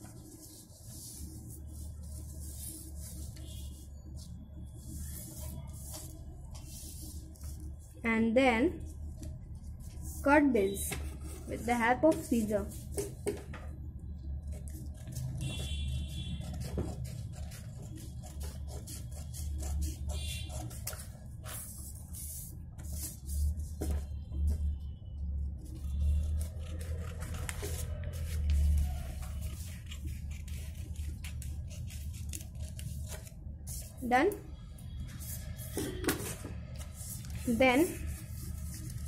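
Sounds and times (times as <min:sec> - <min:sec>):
paper rustles: 0:25.7 - 0:34.0, 0:35.6 - 0:39.0
scissors snipping paper: 0:26.0 - 0:33.4.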